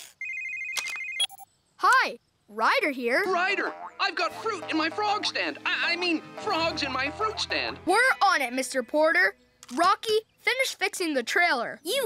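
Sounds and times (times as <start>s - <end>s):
electronic phone ringing trill: 0.1s - 1.5s.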